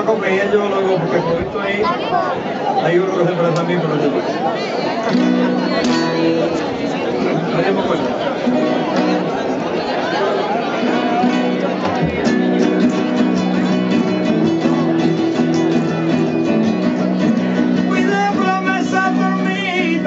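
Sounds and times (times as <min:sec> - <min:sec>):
people talking: 0:00.0 - 0:20.0
acoustic guitar strummed: 0:05.1 - 0:07.4, 0:08.3 - 0:09.6, 0:10.7 - 0:20.0.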